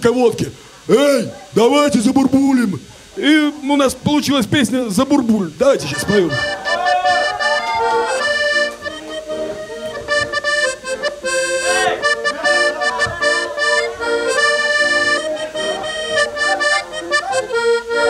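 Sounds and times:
accordion playing melody: 5.7 - 18.0.

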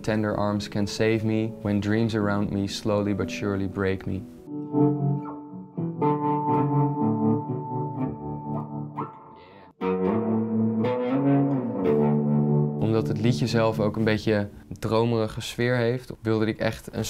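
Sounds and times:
electric guitar with effects: 4.3 - 14.8.

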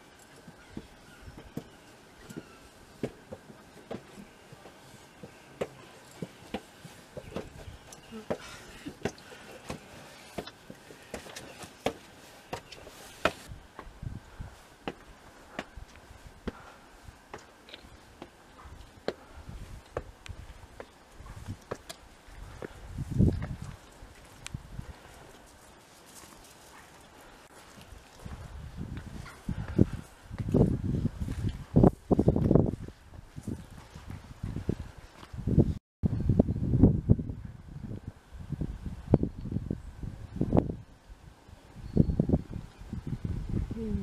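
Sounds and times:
footsteps on wet stone steps: 0.3 - 13.9, 14.8 - 35.4.

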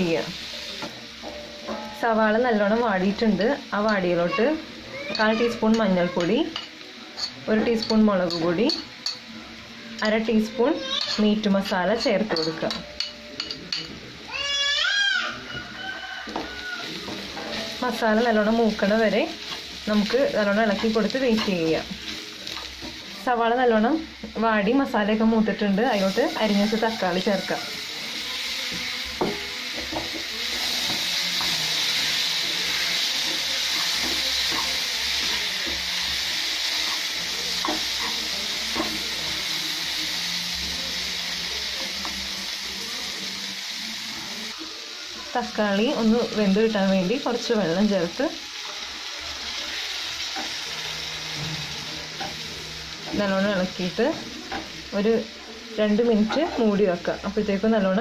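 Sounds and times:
onions sizzling in a frying pan: 0.0 - 58.0
spatula stirring: 25.8 - 39.4.

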